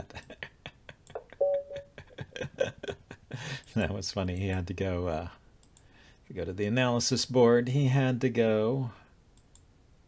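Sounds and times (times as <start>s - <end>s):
electronic notification tone: 1.4s - 1.9s
light clicks: 9.4s - 9.7s.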